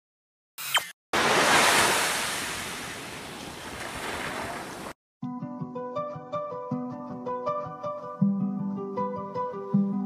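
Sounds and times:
ocean surf washing onto beach: 1.2s - 5.0s.

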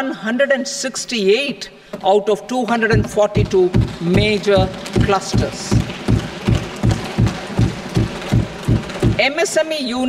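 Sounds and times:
thumping wooden desks: 2.8s - 9.4s.

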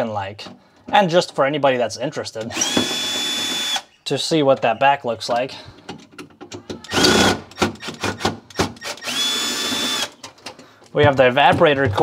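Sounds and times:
cordless drill whining: 2.5s - 3.9s, 6.8s - 10.2s
clicks and knocks of handling: 5.3s - 6.9s, 10.1s - 12.0s.

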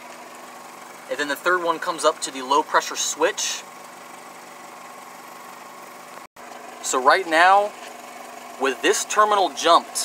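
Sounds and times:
man talking: 1.1s - 3.6s, 6.8s - 7.8s, 8.6s - 10.0s.

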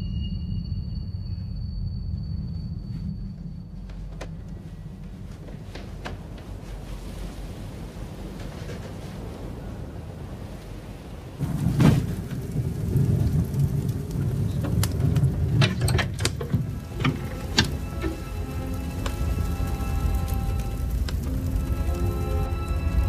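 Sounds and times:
fire roaring and crackling: 6.5s - 23.0s.

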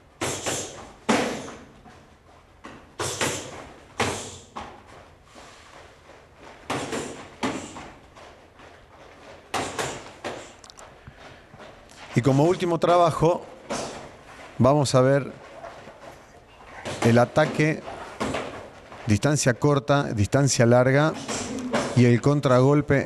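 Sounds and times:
feet slapping foam mat: 0.1s - 12.3s
gloved punches and kicks landing: 0.2s - 1.8s, 3.0s - 4.8s, 6.6s - 8.0s, 9.5s - 10.5s.

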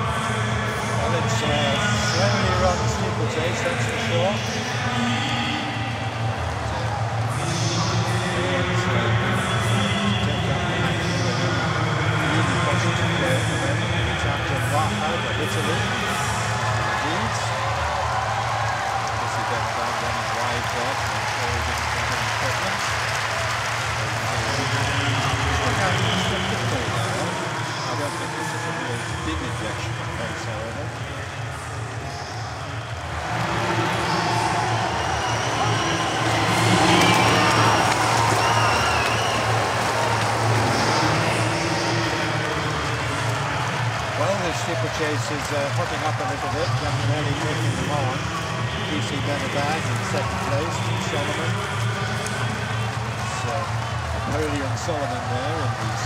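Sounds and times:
crowd cheering: 0.0s - 56.0s
stadium crowd murmur: 0.0s - 56.0s.

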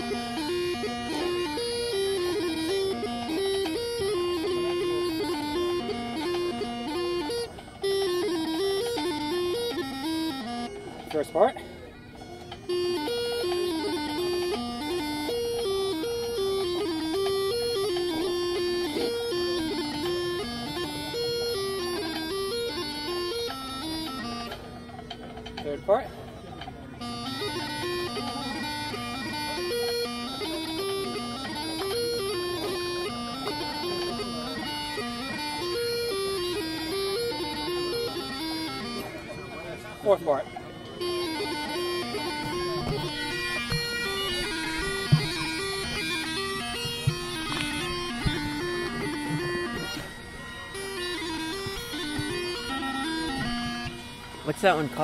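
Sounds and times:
practice chanter melody: 0.0s - 55.0s.

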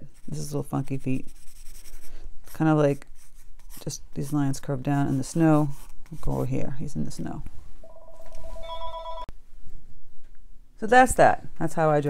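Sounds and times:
electronic ringing tone: 7.8s - 9.3s.

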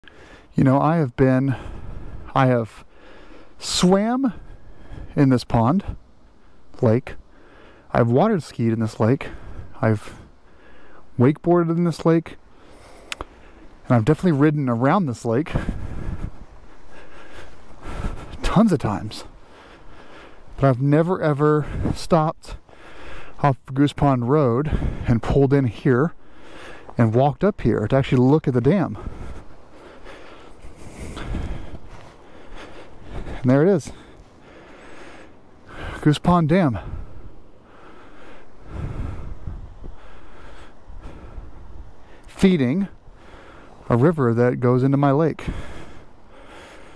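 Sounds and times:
person breathing: 0.0s - 0.6s, 1.5s - 3.6s, 4.3s - 5.2s, 6.2s - 7.9s, 9.2s - 11.2s, 12.4s - 13.9s, 15.5s - 18.5s, 19.2s - 20.6s, 22.5s - 23.4s, 24.7s - 25.1s, 26.1s - 27.0s, 28.9s - 36.1s, 36.7s - 42.3s, 42.9s - 43.9s, 45.4s - 46.9s
wind buffeting microphone: 1.5s - 2.8s, 8.0s - 10.4s, 12.2s - 23.0s, 23.9s - 46.9s.

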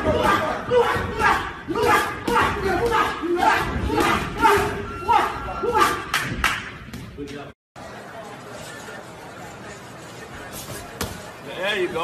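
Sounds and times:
people shouting and yelling: 0.0s - 6.7s.

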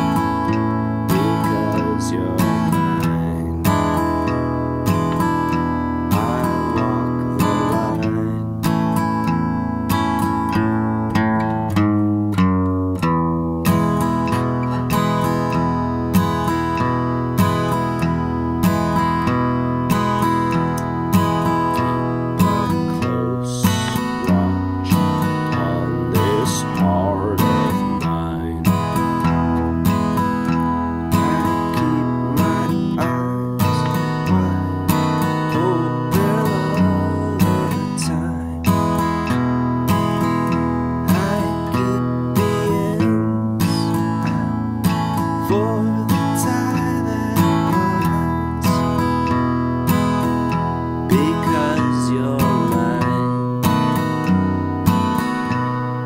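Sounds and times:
acoustic guitar boom-chick pattern: 0.0s - 56.0s.

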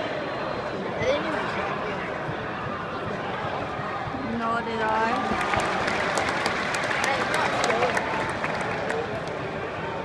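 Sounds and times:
crowd clapping: 4.8s - 10.0s.

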